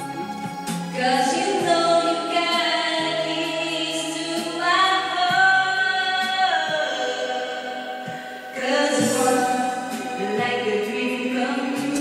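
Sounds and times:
group singing unaccompanied: 0:08.0 - 0:12.0.

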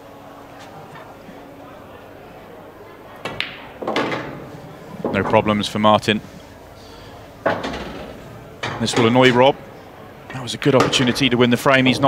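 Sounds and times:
pool balls clacking: 0:03.0 - 0:12.0
commentator speaking: 0:08.7 - 0:09.6, 0:10.3 - 0:12.0.

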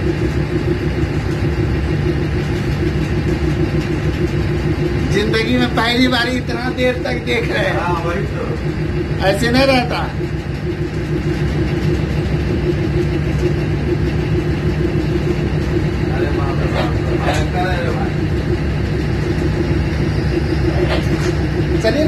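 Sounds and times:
locomotive engine humming: 0:00.0 - 0:22.0
voices speaking: 0:16.0 - 0:18.4.

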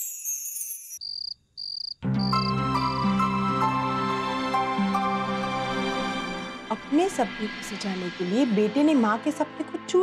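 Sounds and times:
cricket chirping: 0:01.0 - 0:03.0
soft background music: 0:02.0 - 0:10.0.

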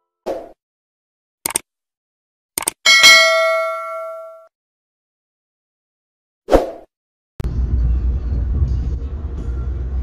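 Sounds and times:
notification bell ding: 0:02.9 - 0:04.5.

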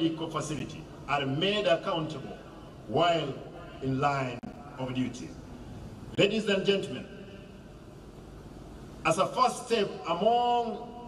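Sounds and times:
open-air hum and hiss: 0:00.0 - 0:11.0.

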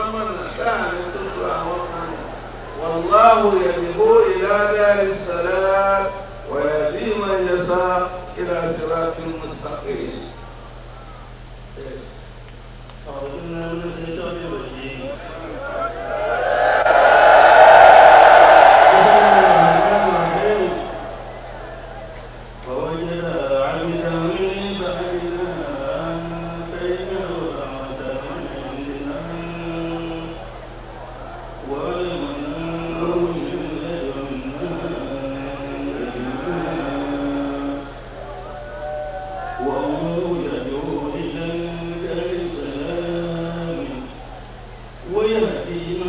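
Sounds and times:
crowd crying out: 0:00.0 - 0:06.5, 0:15.3 - 0:23.0, 0:28.6 - 0:33.8, 0:34.4 - 0:40.2
man chanting devotional verse: 0:00.0 - 0:10.5, 0:13.0 - 0:15.6, 0:18.9 - 0:21.0, 0:22.6 - 0:30.5, 0:31.6 - 0:38.2, 0:39.6 - 0:44.3, 0:45.0 - 0:46.0
low electrical hum: 0:00.0 - 0:46.0.

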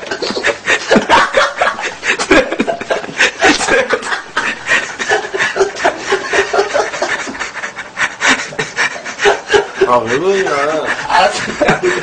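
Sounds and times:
people snickering and giggling: 0:00.0 - 0:12.0.

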